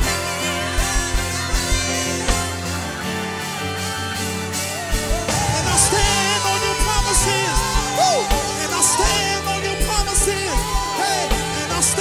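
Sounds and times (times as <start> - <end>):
worship band playing: 0.0 - 12.0.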